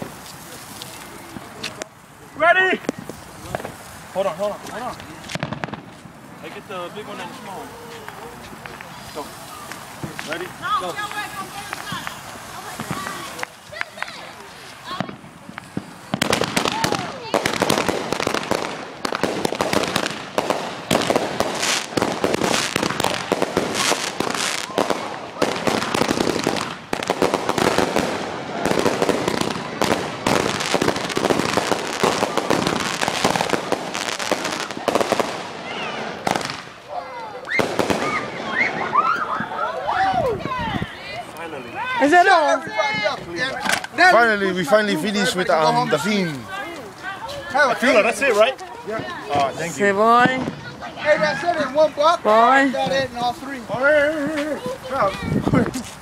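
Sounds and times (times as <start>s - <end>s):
fireworks crackling and banging: 0.0s - 56.0s.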